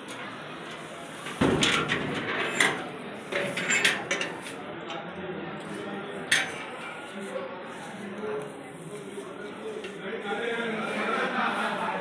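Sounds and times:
sharp clicks and knocks: 1.2s - 5.1s.

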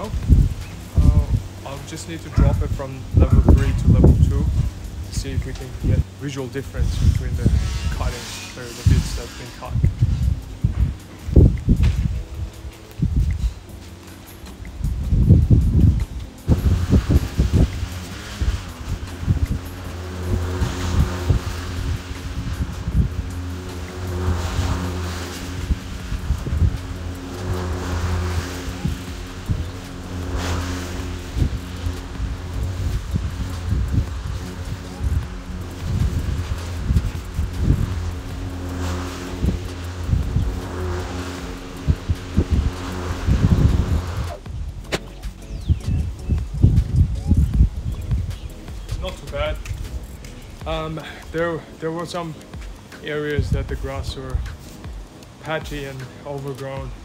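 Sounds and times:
electric lawn mower humming: 0.0s - 53.1s
blade cutting grass: 0.0s - 57.0s.

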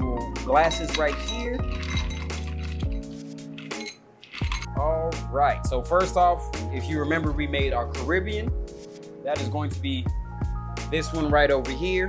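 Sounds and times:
background music: 0.0s - 12.0s
ice cubes clinking into glasses: 0.7s - 4.7s.

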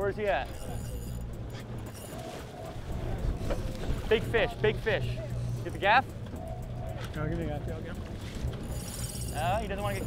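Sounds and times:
boat engine humming: 0.0s - 10.0s
wind: 0.0s - 10.0s
sea noise: 0.4s - 10.0s.

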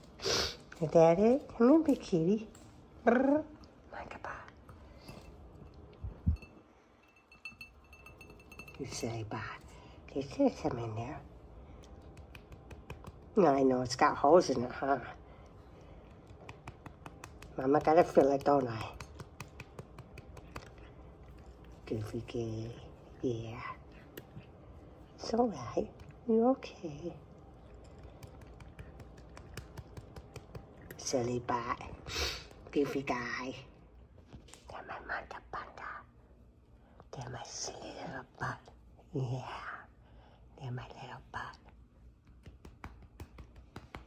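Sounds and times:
faint light clinks: 4.9s - 9.3s.

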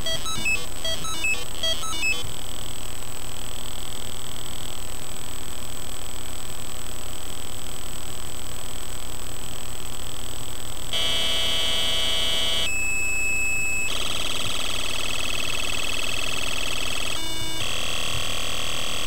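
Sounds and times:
square-wave synth buzz: 10.9s - 19.0s.

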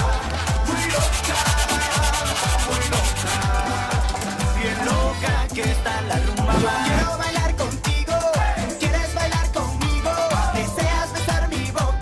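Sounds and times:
background music with steady beat: 0.0s - 12.0s
sandpaper rubbing on metal: 0.7s - 3.5s.

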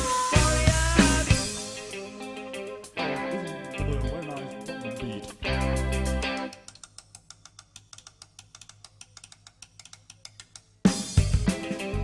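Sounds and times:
rock band playing: 0.0s - 6.5s, 10.9s - 12.0s
fast regular ticking: 6.4s - 11.3s.

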